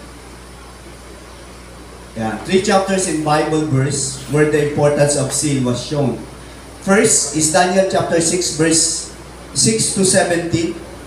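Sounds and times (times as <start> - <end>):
constant low hum: 0.0 - 11.0
steady background hiss: 0.0 - 11.0.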